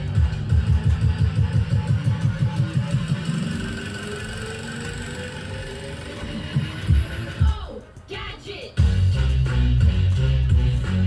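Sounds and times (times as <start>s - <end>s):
rising sweep: 0.0s - 7.5s
dance music with pulsing bass: 0.0s - 11.0s.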